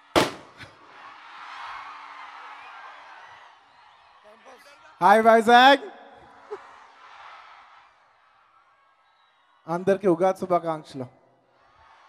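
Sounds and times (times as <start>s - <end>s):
crowd cheering: 0.0s - 12.0s.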